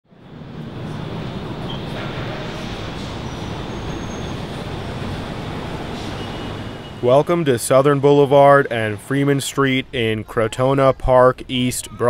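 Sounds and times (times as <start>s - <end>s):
elevated train running: 0.1s - 12.0s
faint high wheel squeal: 0.9s - 7.2s.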